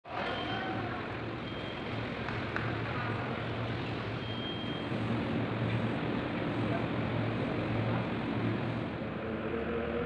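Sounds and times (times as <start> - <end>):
background murmur: 0.1 - 10.0.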